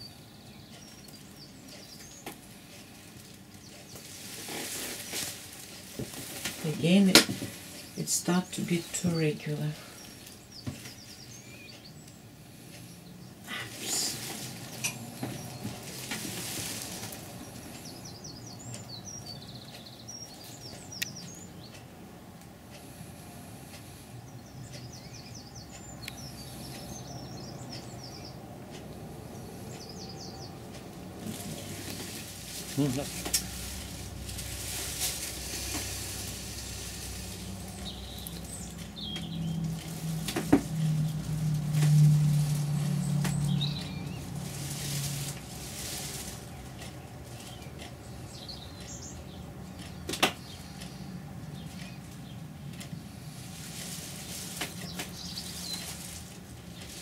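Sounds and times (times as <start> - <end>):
small birds chirping: 0.0 - 57.0.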